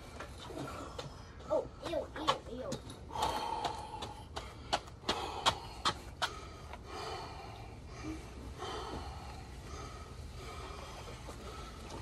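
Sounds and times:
man breathing hard: 0.0 - 2.0, 2.9 - 12.0.

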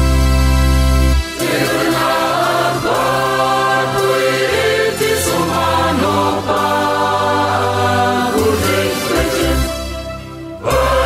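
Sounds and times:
choir singing a hymn: 1.4 - 11.0.

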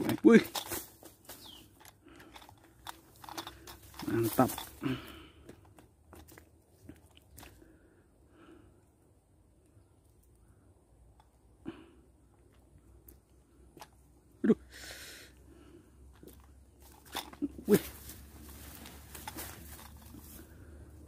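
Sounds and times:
rustling with knocks: 0.0 - 4.8, 16.1 - 20.6.

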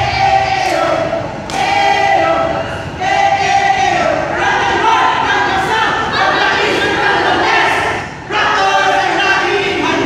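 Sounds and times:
cheer squad chanting: 0.0 - 10.0.

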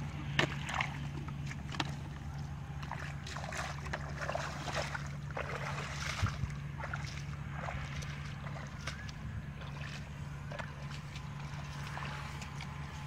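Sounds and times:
bare feet wading through water: 0.0 - 13.0
small splashes: 0.0 - 13.0
steady low hum: 0.0 - 13.0.

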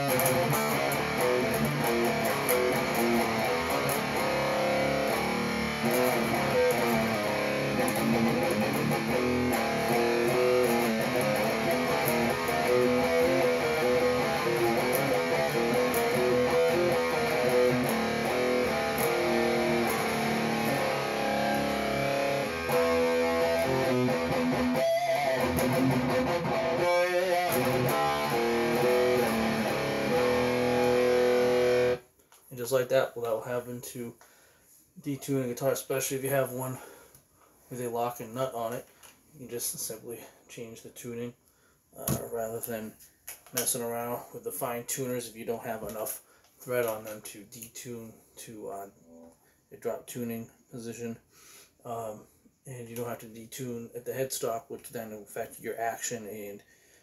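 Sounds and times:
electric guitar riffs and chords: 0.0 - 32.0.

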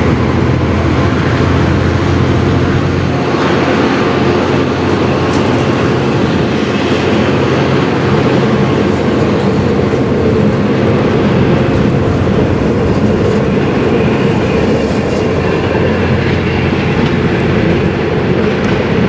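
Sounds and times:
train carriages rumbling past: 0.0 - 19.0
wheels clacking over rail joints: 0.0 - 19.0.

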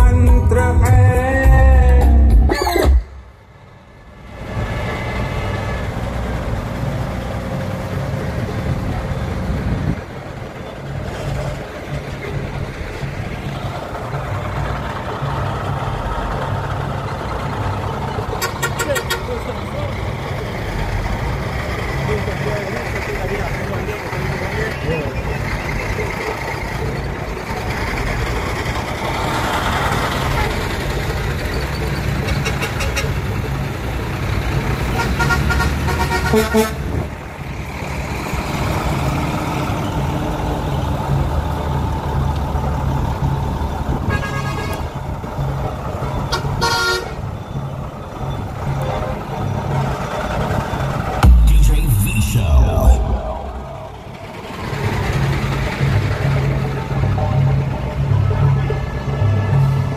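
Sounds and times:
diesel trucks idling: 0.0 - 59.9
truck horn blasts: 32.3 - 33.2, 34.9 - 37.0, 44.0 - 44.9, 46.3 - 47.2.

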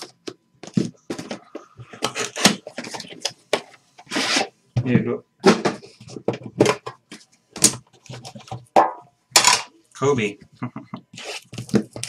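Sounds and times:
shrink wrap and cardboard crinkling: 11.2 - 12.0.

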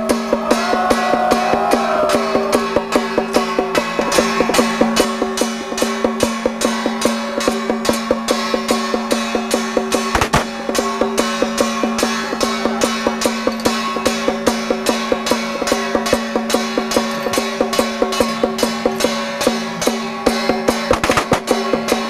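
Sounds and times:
gong and drum percussion: 0.0 - 22.0.

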